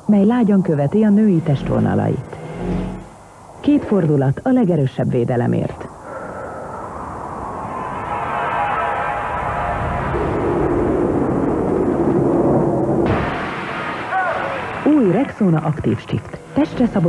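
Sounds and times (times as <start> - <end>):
sustained music tones: 0.6 - 3.7, 15.8 - 17.0
rushing whoosh: 1.7 - 3.3.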